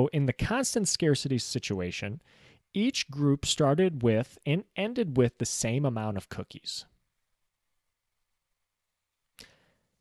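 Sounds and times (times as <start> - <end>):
quick intake of breath: 2.2 - 2.6.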